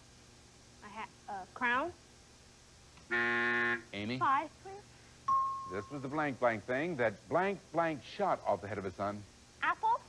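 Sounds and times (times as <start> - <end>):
game show buzzer: 3.1 - 3.9.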